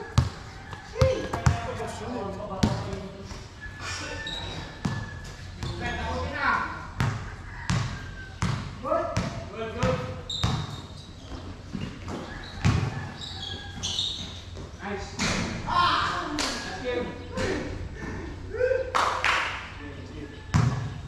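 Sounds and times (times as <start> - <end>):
players calling out: 0.0 - 21.0
basketball bouncing on hard court: 0.1 - 0.4, 1.0 - 1.8, 2.6 - 3.1, 7.0 - 13.1, 20.5 - 21.0.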